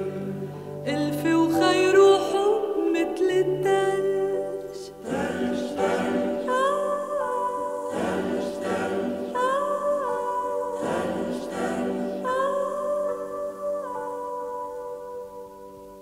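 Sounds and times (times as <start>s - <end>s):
choir-like wordless voices: 0.0s - 14.8s.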